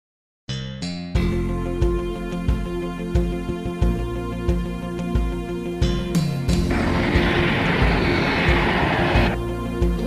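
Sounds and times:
background music with steady beat: 0.8s - 10.0s
jet engine rushing overhead: 6.6s - 9.4s.

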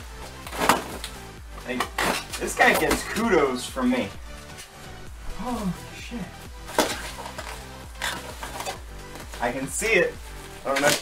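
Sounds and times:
bubble wrap crinkling: 0.0s - 3.2s, 4.7s - 11.0s.

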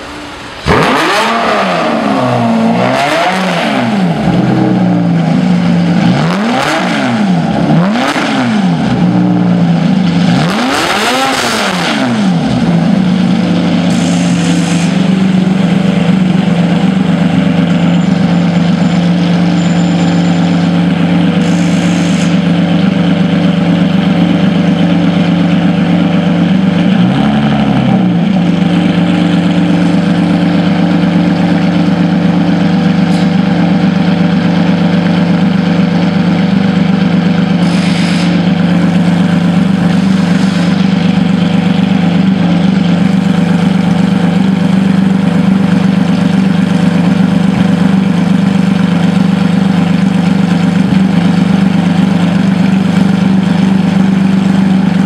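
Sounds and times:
car engine idling: 0.0s - 55.0s
car engine starting and revving: 0.0s - 55.0s.

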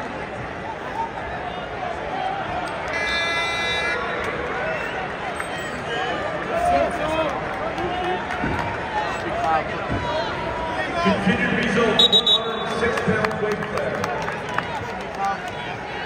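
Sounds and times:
crowd talking and shouting: 0.0s - 16.0s.

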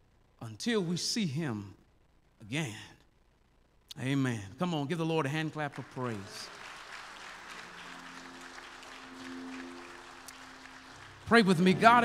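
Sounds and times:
congregation applauding: 5.2s - 12.0s
soft sustained musical chords: 5.8s - 12.0s.

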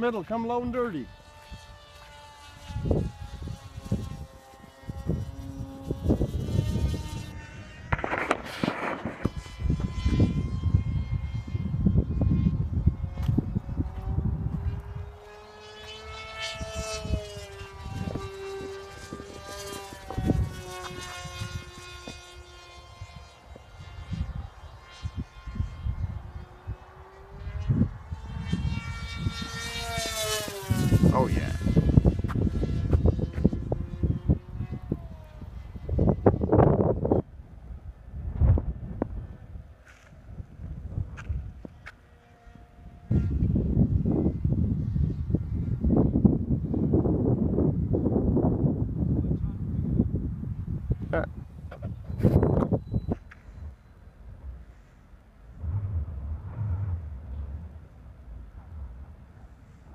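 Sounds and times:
wind buffeting microphone: 0.0s - 59.9s
model plane motor whining: 0.3s - 37.2s.

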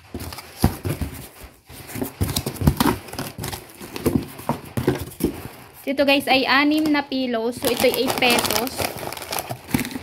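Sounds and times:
cardboard box knocks and scrapes: 0.0s - 5.6s.

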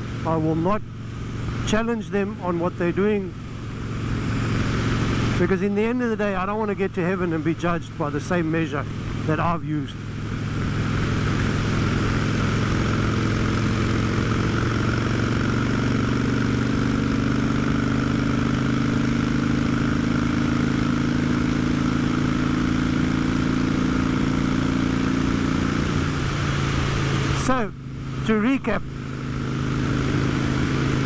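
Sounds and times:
motorcycle engine running: 0.0s - 31.0s.

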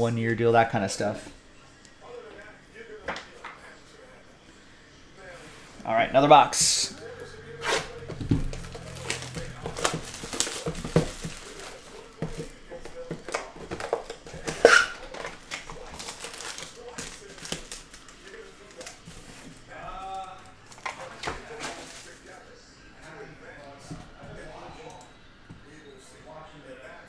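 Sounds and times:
plastic shrink wrap tearing: 7.6s - 12.5s, 13.2s - 19.4s, 20.2s - 22.3s
foil packs crinkling: 7.8s - 22.4s.

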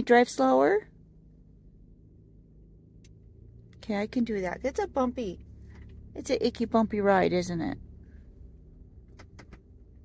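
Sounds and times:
low rumble inside car cabin: 0.0s - 10.0s.

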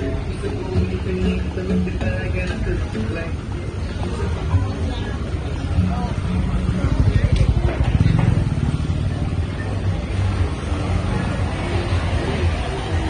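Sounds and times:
background voices: 0.0s - 13.0s
vehicle engine running: 5.3s - 13.0s.

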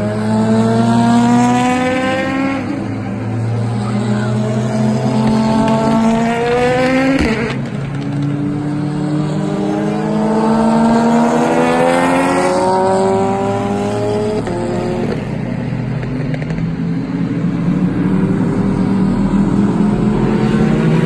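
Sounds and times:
race car engines accelerating: 0.0s - 21.0s.

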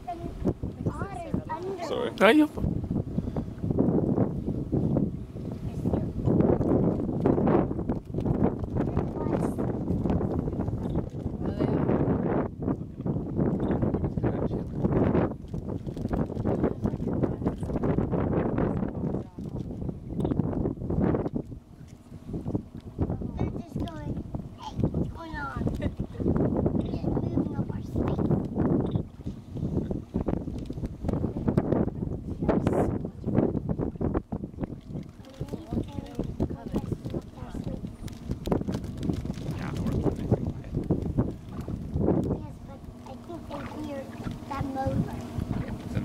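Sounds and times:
wind buffeting microphone: 0.0s - 46.0s.

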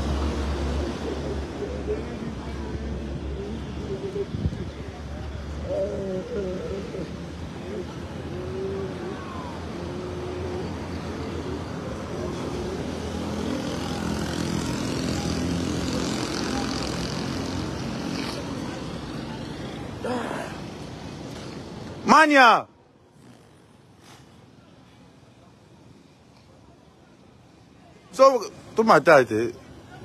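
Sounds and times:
voices: 0.0s - 23.4s
road traffic: 0.0s - 30.0s.

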